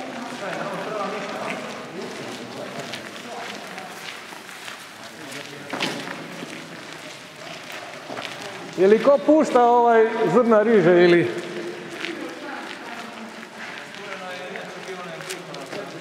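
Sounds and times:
group footsteps walking: 0.0s - 16.0s
indistinct chatter: 0.0s - 16.0s.

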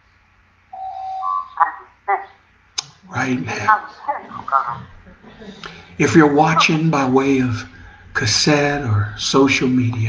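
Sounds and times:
breathy sounds: 7.6s - 8.3s.

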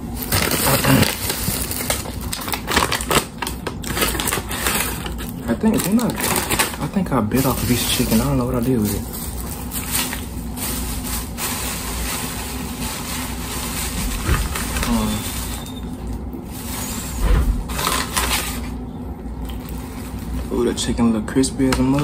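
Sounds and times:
paper bag rustling: 0.0s - 18.8s
low background hum: 0.0s - 22.0s.

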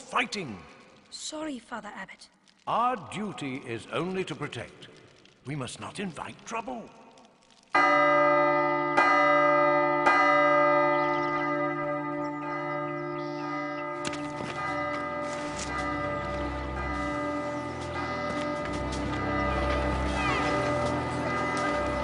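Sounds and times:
large bell tolling: 7.8s - 22.0s.

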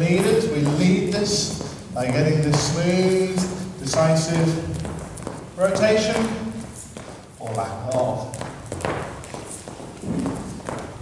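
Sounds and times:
dance steps on hard floor: 0.0s - 11.0s.

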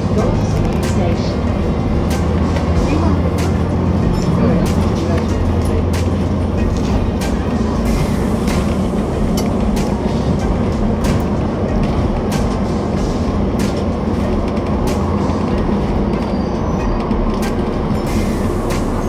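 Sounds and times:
bus engine and road drone: 0.0s - 19.0s.

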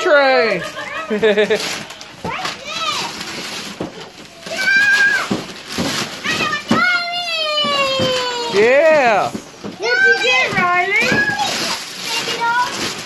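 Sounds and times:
child squealing: 4.4s - 5.3s, 6.3s - 8.7s
child shouting: 4.4s - 5.4s, 6.2s - 8.7s, 9.8s - 12.7s
child crying: 6.3s - 8.7s.

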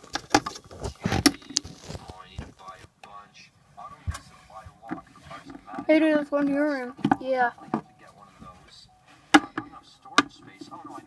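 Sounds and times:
hard objects knocking on surface: 7.0s - 7.9s, 9.3s - 10.4s.

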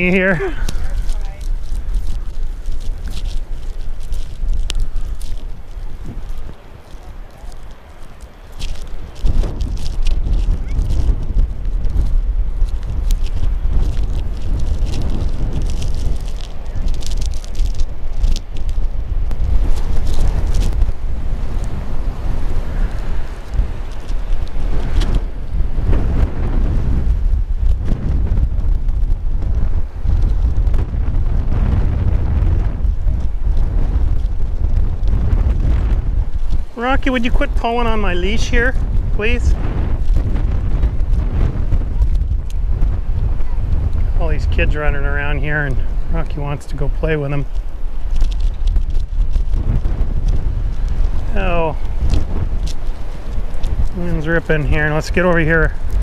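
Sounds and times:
strong wind buffeting microphone: 0.0s - 56.0s.

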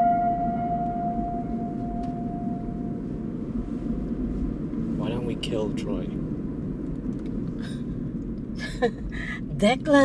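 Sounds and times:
ringing tone: 0.0s - 3.1s
car road rumble from inside: 0.0s - 10.0s.

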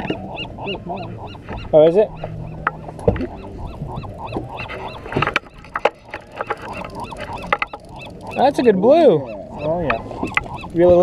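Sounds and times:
sharp clicks and knocks: 4.3s - 8.4s, 9.9s - 11.0s.

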